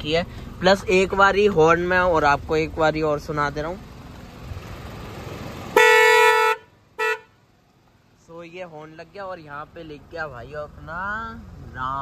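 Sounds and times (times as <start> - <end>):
car horn honking: 5.7 - 7.4.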